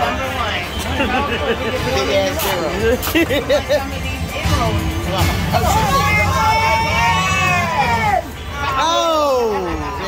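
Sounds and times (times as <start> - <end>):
babble of small crowd: 0.0 - 10.0.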